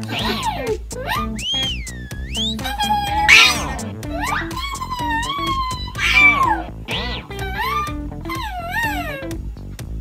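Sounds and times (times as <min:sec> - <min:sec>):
squeaky cartoon voice: 0:00.0 - 0:01.8, 0:02.4 - 0:09.2
background music: 0:00.0 - 0:10.0.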